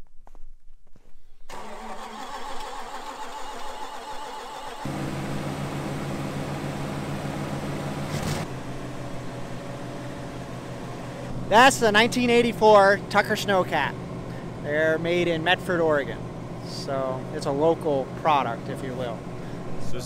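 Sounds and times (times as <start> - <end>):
engine starter cranking: 1.5 - 5.0
engine idling: 1.5 - 20.0.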